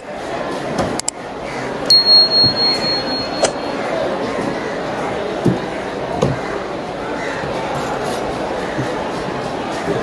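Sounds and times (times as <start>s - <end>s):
steady background noise: 0.0s - 10.0s
high steady electronic tone: 1.9s - 3.9s
click: 3.4s - 3.6s.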